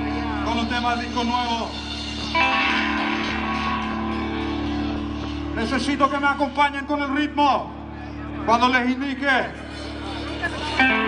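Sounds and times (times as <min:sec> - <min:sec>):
electric guitar chord ringing: 0:00.0 - 0:08.4, 0:09.5 - 0:11.0.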